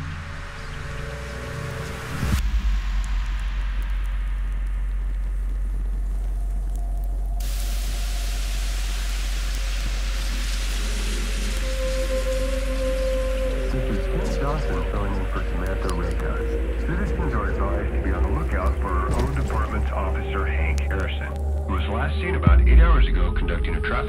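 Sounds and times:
bright hiss: 0.0 - 21.8
deep drone with hiss: 0.0 - 24.0
horror film music: 0.0 - 24.0
sudden hit: 22.4 - 24.0.

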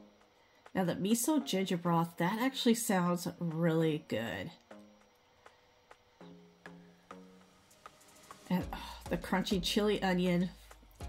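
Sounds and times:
woman speaking: 0.8 - 4.6, 8.5 - 10.6.

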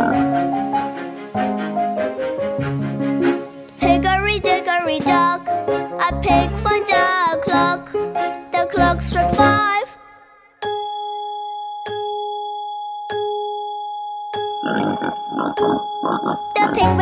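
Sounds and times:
person singing: 3.8 - 7.9, 8.5 - 10.2, 16.2 - 17.0
clock bell striking: 10.6 - 17.0.

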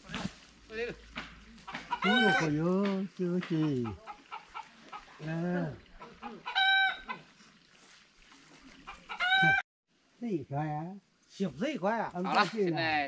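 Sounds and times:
chickens calling: 1.0 - 7.6, 8.5 - 9.6.

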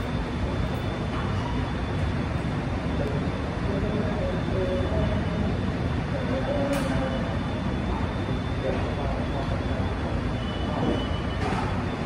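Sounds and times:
room and traffic rumble: 0.0 - 12.0
people talking: 2.9 - 12.0.

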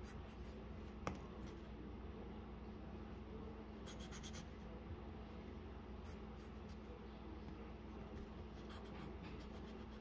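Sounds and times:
low steady hum: 0.0 - 10.0
pencil scratching on paper: 3.9 - 4.5, 8.4 - 10.0.

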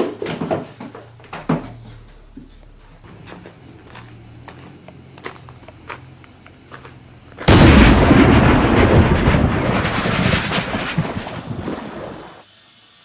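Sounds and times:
loud deep rushing blast: 7.5 - 12.2.

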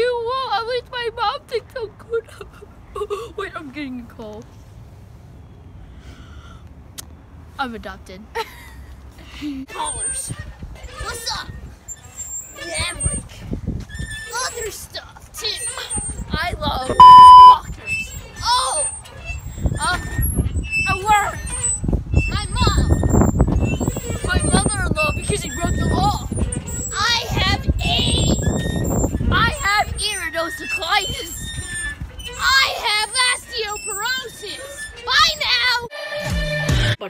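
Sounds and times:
swing chains squeaking: 9.2 - 35.9
wind rumble on microphone: 12.7 - 14.4, 15.9 - 32.3.

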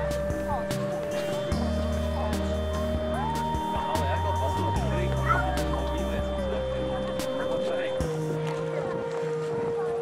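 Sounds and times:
held bass notes: 0.0 - 9.9
crowd chatter: 0.0 - 10.0.

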